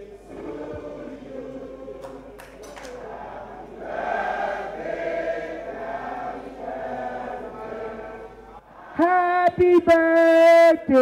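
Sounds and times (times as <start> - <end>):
choir singing long held notes: 0.0 - 9.0.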